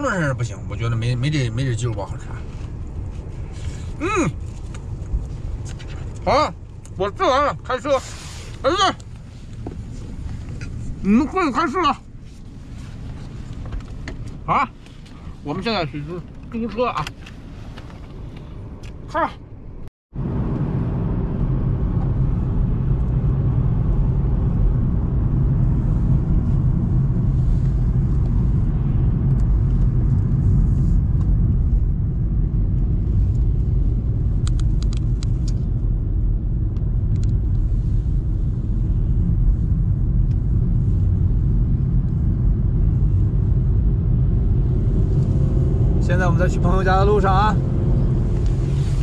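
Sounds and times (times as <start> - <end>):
car engine and tyre noise: 0.0 - 49.0.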